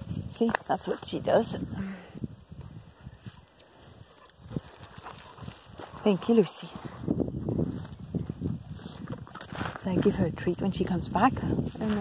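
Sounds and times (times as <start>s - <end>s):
footsteps on dirt path: 0.0s - 12.0s.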